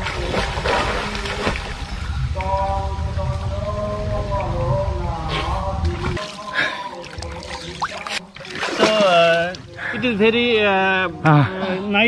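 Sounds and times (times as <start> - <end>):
steady low rumble: 0.0 - 6.2.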